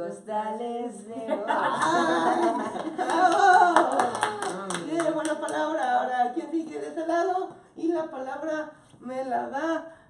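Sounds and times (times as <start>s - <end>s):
small group clapping: 1.8s - 6.8s.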